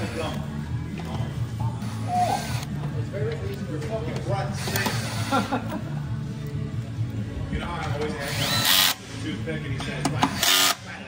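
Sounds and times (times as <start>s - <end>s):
power tool whining: 8.2s - 9.0s.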